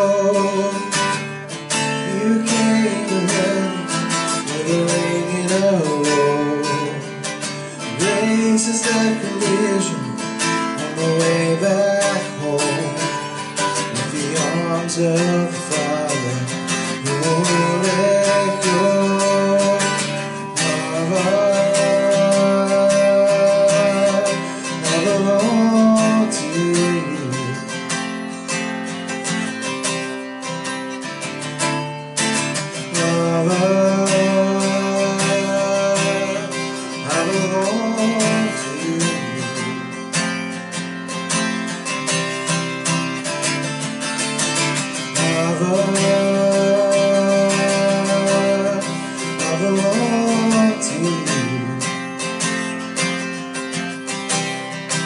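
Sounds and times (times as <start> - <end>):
man singing long notes: 0.0 - 1.2, 2.0 - 27.9, 32.6 - 40.1, 45.0 - 52.0
acoustic guitar strumming: 0.0 - 55.0.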